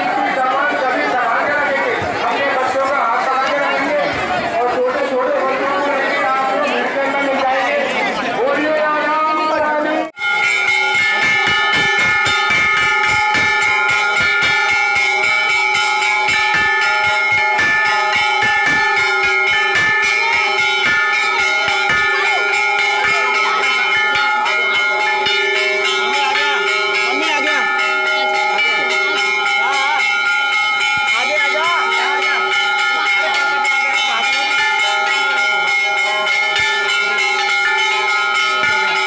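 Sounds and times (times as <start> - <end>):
crowd of voices: 0.0 - 39.0
temple bells clanging: 0.0 - 39.0.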